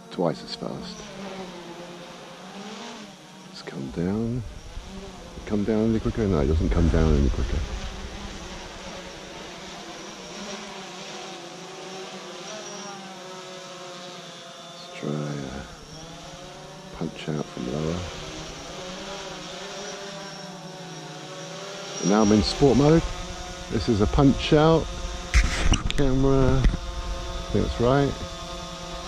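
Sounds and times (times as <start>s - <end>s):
drone propellers buzzing: 0.0s - 29.0s.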